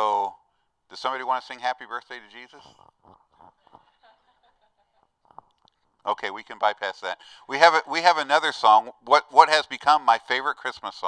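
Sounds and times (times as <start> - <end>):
person chuckling: 2.6 - 5.6.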